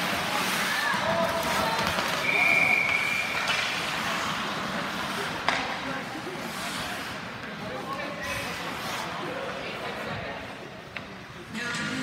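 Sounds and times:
referee whistle: 2.2s - 3.3s.

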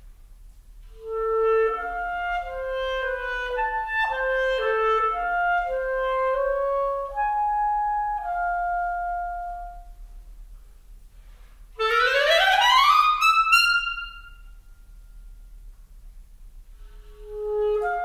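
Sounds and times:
clarinet playing: 0.8s - 10.2s, 11.8s - 15.6s, 16.7s - 18.0s.

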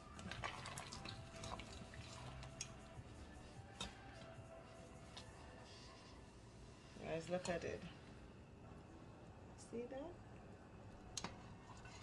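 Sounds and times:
liquid sloshing in a pot: 0.0s - 6.1s, 11.2s - 12.0s.

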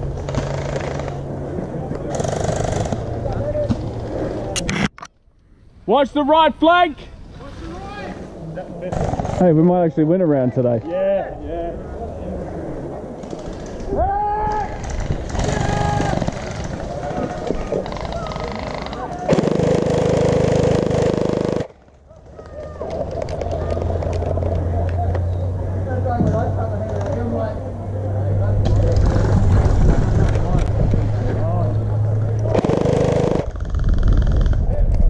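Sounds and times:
distant players shouting: 13.8s - 19.5s, 22.0s - 27.7s.

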